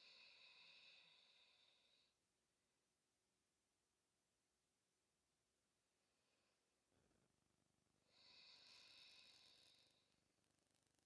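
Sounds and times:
faint breath out: 0:00.0 - 0:02.2.

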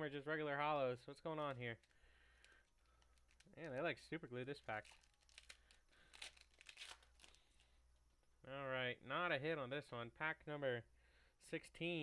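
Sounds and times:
foil wrapper crinkling: 0:01.3 - 0:07.7
foil wrapper ripping: 0:04.6 - 0:07.5.

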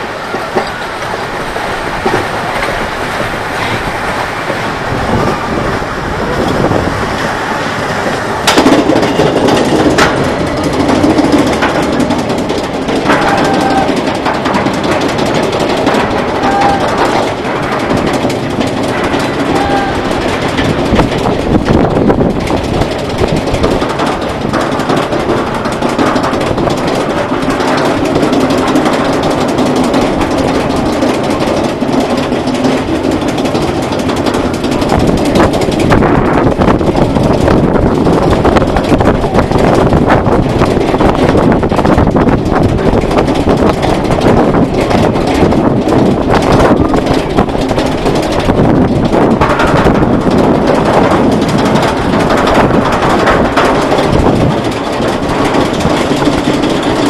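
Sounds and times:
roller coaster chain lift rattling: 0:00.0 - 0:57.0.

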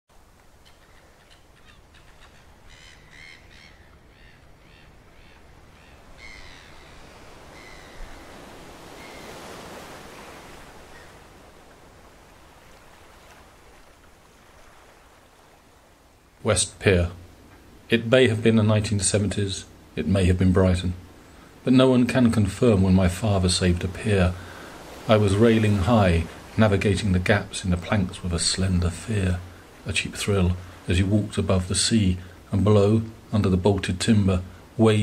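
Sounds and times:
seagulls calling: 0:00.6 - 0:11.3
sea waves washing: 0:04.9 - 0:35.0.

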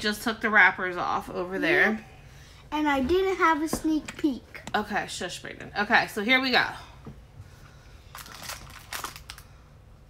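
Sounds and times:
plastic bag crinkling: 0:08.1 - 0:09.6.

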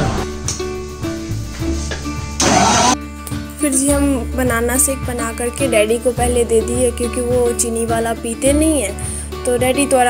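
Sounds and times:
background music: 0:00.0 - 0:10.0
mixer grinder motor: 0:02.4 - 0:03.0.

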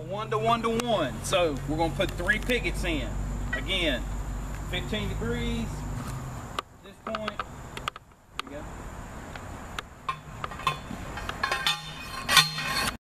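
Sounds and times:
light metallic clinks and knocks: 0:10.0 - 0:13.0
metal clank: 0:10.0 - 0:13.0.

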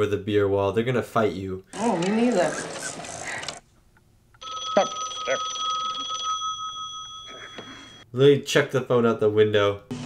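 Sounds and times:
telephone ringing: 0:04.4 - 0:08.1.

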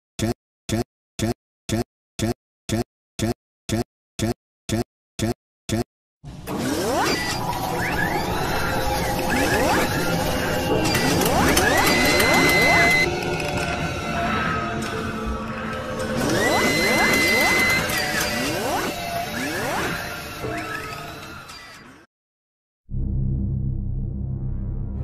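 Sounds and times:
mechanical whirring and ratcheting: 0:06.4 - 0:22.1
intro music: 0:22.9 - 0:25.0.

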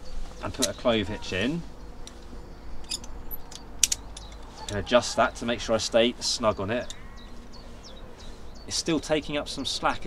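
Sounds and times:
metal karabiner clicks: 0:02.8 - 0:04.9.

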